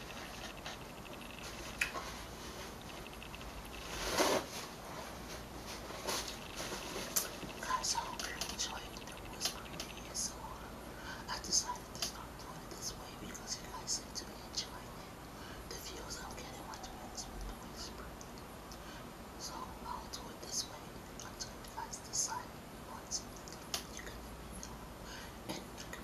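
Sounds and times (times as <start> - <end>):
woman whispering: 7.2 - 26.0.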